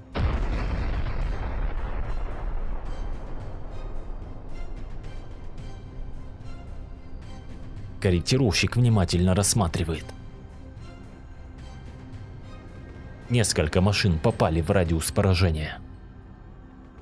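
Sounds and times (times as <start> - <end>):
background music: 0.0 - 17.0
heavy explosion blast rumbling: 0.1 - 5.0.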